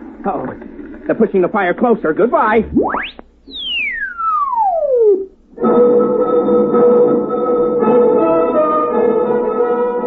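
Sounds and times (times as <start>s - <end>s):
descending electronic tone: 2.5s - 5.4s.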